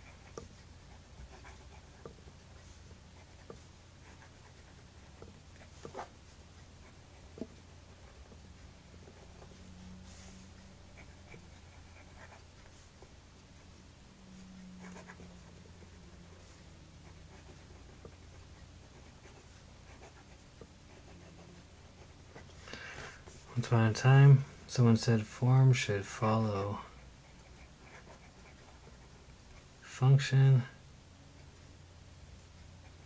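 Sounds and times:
fountain pen scratching on paper: 0:00.0 - 0:13.1, 0:14.8 - 0:22.6, 0:27.0 - 0:29.6
low steady hum: 0:00.0 - 0:33.0.

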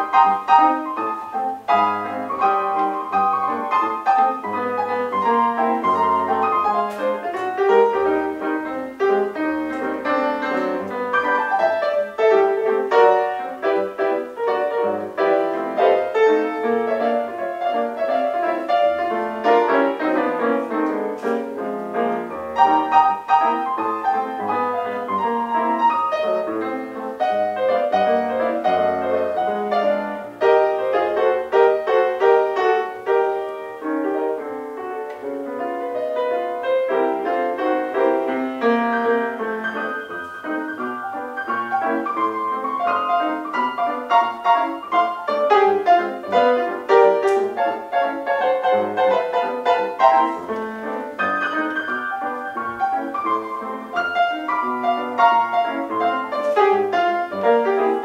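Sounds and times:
jazz piano solo: 0:00.0 - 0:58.0.

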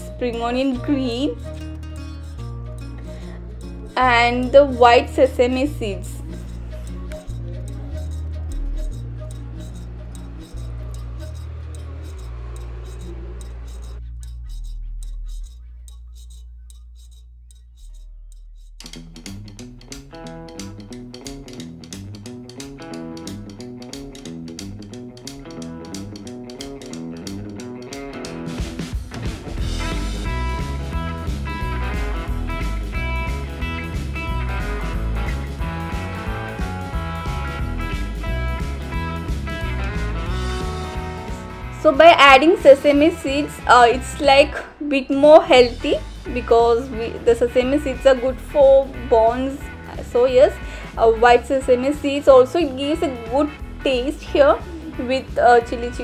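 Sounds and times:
plucked guitar music with beat: 0:00.0 - 0:56.0
slow held low notes: 0:05.4 - 0:20.9.

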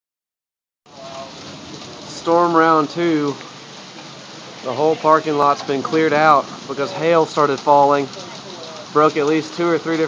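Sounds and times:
heavy rain on pavement: 0:00.9 - 0:10.0.

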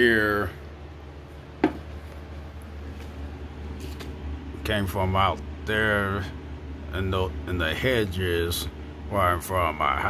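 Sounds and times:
steady low hum: 0:00.0 - 0:10.0
short knock: 0:01.6 - 0:01.9.

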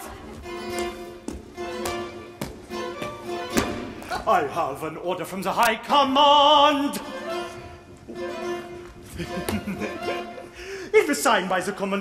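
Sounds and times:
orchestral accompaniment with held notes: 0:00.0 - 0:04.6, 0:05.9 - 0:10.6.

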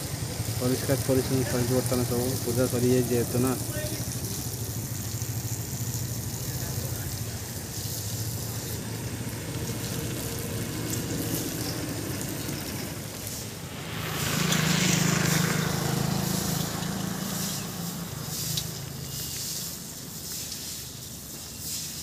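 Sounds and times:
hiss: 0:00.0 - 0:22.0.

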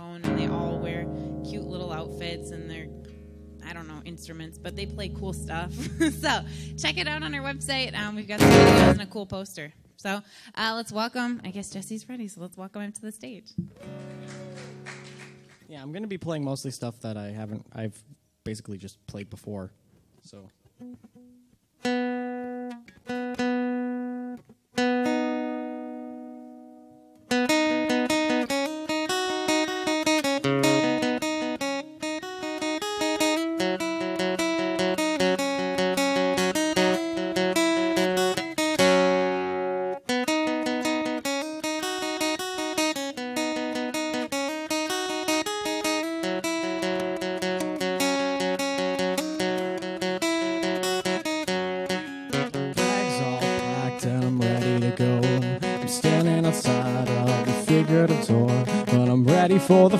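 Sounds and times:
acoustic guitar picking: 0:00.0 - 0:09.2, 0:13.6 - 0:15.6, 0:20.6 - 0:59.9.

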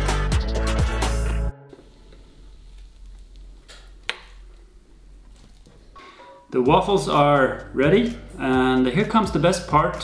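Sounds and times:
quiet handling sounds: 0:01.7 - 0:08.2.

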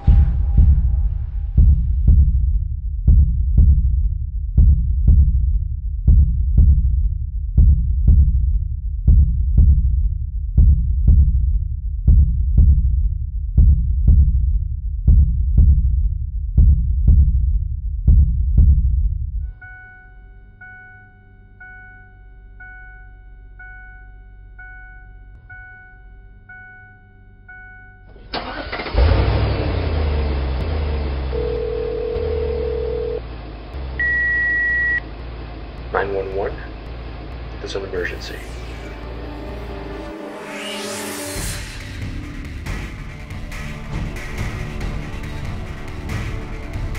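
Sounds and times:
deep heartbeat-like double thud: 0:00.0 - 0:07.0, 0:07.6 - 0:08.5, 0:09.1 - 0:10.0, 0:10.6 - 0:11.5, 0:12.1 - 0:13.0, 0:13.6 - 0:14.5, 0:15.1 - 0:16.0, 0:16.6 - 0:17.5, 0:18.1 - 0:19.0
car warning chime beeping: 0:19.5 - 0:28.9, 0:31.3 - 0:33.2, 0:34.0 - 0:35.1
car engine starting and running: 0:19.6 - 0:46.9
short steady tones: 0:34.0 - 0:35.0.

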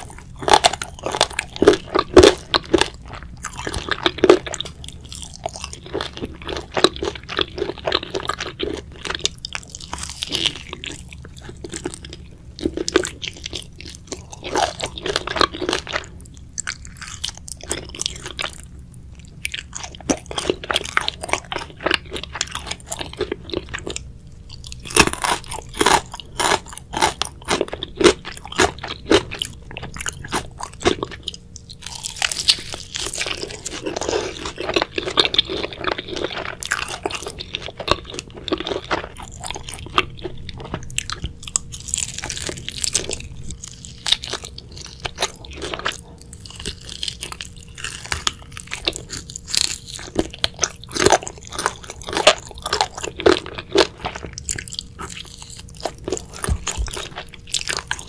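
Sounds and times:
crunchy chewing of fried chicken: 0:00.0 - 0:58.0.

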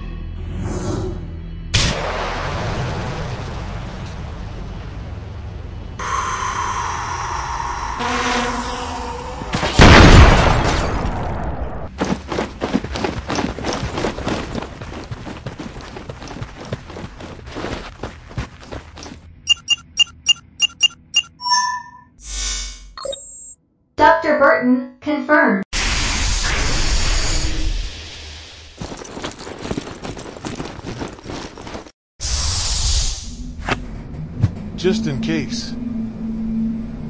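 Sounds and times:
loud explosion: 0:09.8 - 0:11.6
short electronic beeps: 0:19.5 - 0:22.2, 0:23.0 - 0:23.6.

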